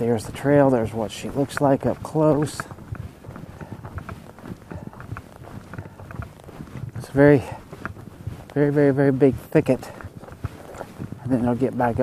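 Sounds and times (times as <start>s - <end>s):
footsteps on leaves and twigs: 0.0s - 12.0s.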